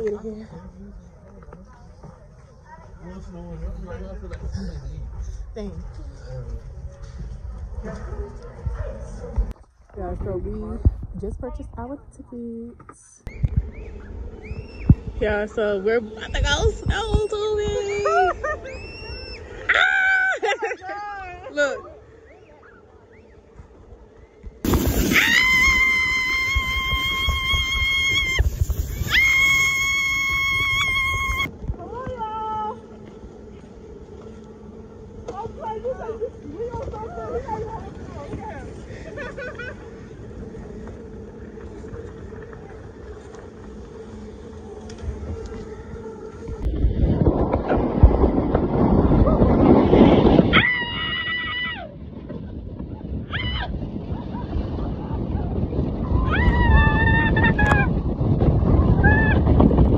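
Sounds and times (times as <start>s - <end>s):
tube scraping over snow: 24.6s - 51.1s, 52.0s - 59.9s
people screaming: 24.7s - 31.5s, 50.5s - 52.0s, 53.3s - 53.9s, 56.1s - 57.9s, 58.9s - 59.6s.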